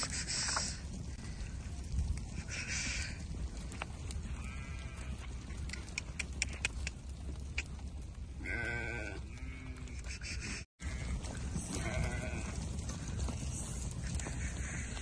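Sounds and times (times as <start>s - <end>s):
steady low rumble: 0.1s - 15.0s
sheep bleating: 4.3s - 5.3s, 8.4s - 10.1s, 10.8s - 13.1s
sharp clicks: 5.6s - 7.8s.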